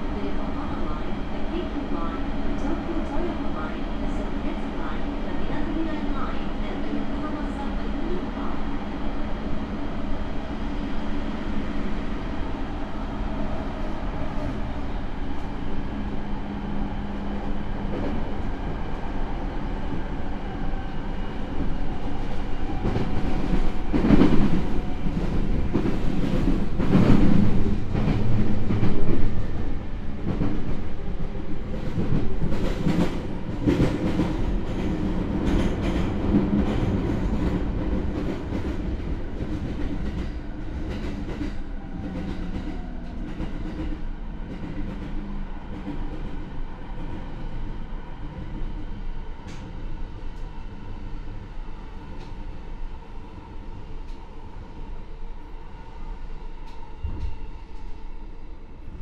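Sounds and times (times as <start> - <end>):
train wheels rumbling on rail: 0.0 - 59.0
train clattering over track: 31.7 - 45.2.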